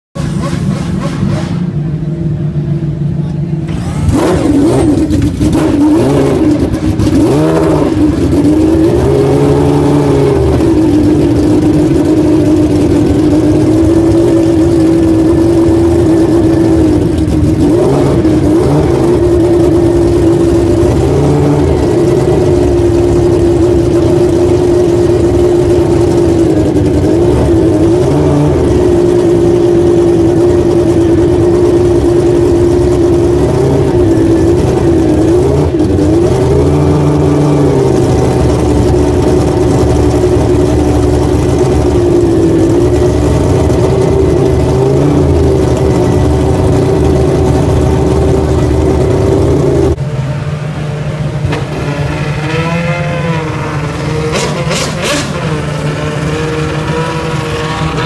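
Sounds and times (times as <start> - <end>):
race car engine idling and revving: 0.1 - 58.0.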